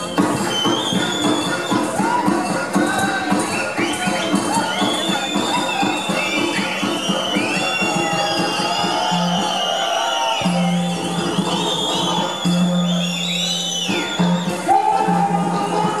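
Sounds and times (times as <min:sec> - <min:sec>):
drumming: 0:00.0 - 0:16.0.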